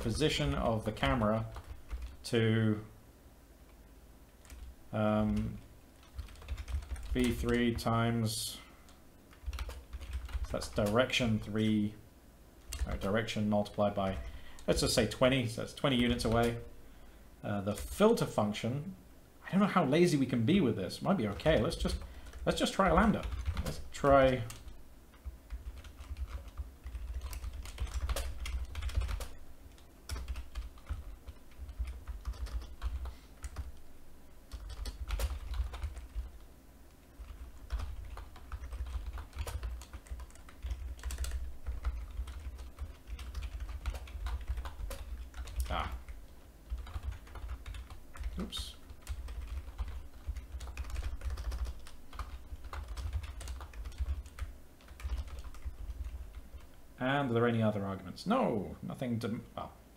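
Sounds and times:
computer keyboard typing: 0:00.0 - 0:02.2, 0:04.4 - 0:07.9, 0:09.3 - 0:11.4, 0:12.7 - 0:13.2, 0:14.0 - 0:16.7, 0:21.3 - 0:33.8, 0:34.5 - 0:36.5, 0:37.2 - 0:56.8.

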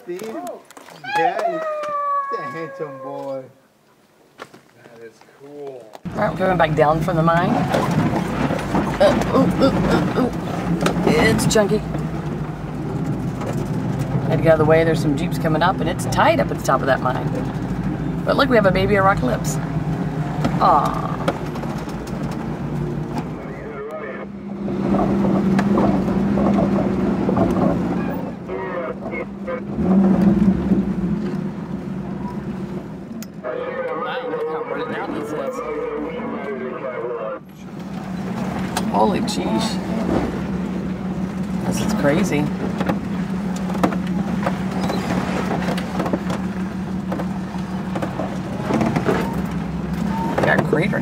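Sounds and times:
indistinct voices: 0:00.0 - 0:03.6, 0:06.1 - 0:11.9, 0:20.4 - 0:21.6, 0:23.1 - 0:24.4, 0:28.0 - 0:30.1, 0:33.3 - 0:37.8
engine running at low speed: 0:06.1 - 0:51.0
knocks and rattles: 0:07.2 - 0:14.7, 0:20.3 - 0:23.3, 0:24.6 - 0:28.3, 0:41.4 - 0:50.9.

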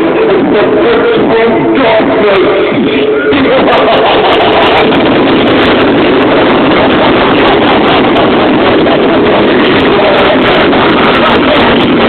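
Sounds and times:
fireworks rumble and crackling: 0:00.0 - 0:12.0.

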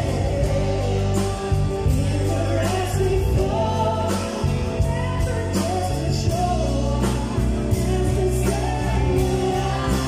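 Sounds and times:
live band with singer: 0:00.0 - 0:10.0.

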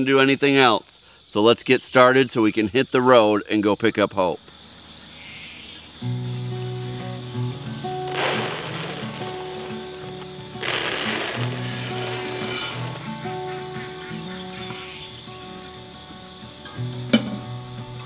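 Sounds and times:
background music: 0:06.2 - 0:18.0
feed pouring into rubber pan: 0:08.1 - 0:13.0.

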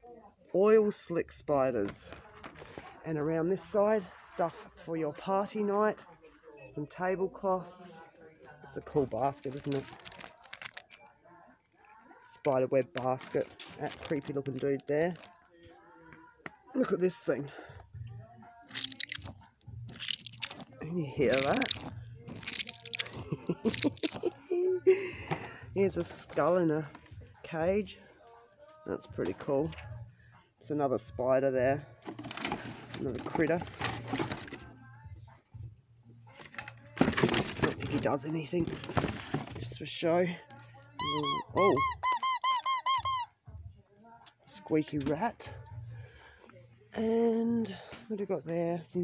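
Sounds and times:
rubber squeeze toy squishing: 0:18.7 - 0:24.3, 0:41.0 - 0:43.3.

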